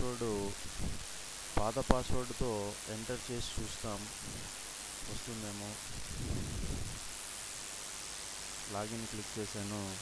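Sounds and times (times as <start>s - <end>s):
recording hiss: 0.0s - 10.0s
low rumble on microphone: 5.9s - 7.1s.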